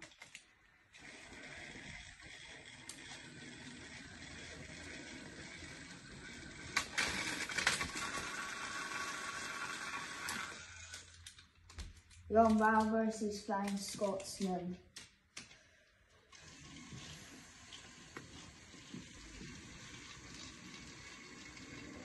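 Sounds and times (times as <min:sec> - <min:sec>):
toy train running on track: 0:00.9 - 0:11.4, 0:16.3 - 0:22.0.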